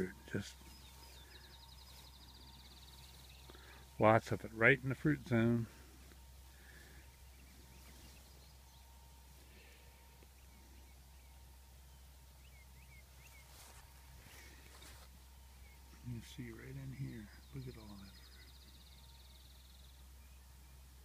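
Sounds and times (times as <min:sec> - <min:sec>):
soft bird chirps: 0:00.0 - 0:04.0, 0:05.7 - 0:21.0.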